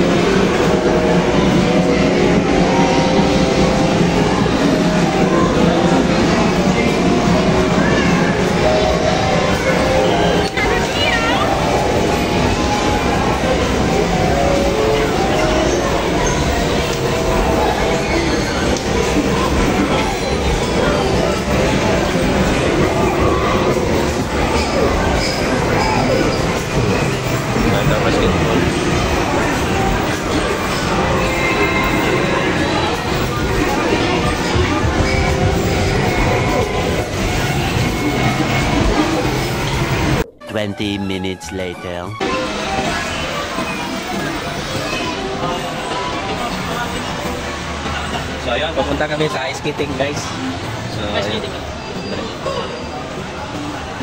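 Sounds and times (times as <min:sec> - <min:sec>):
people chattering: 0:00.0 - 0:54.0.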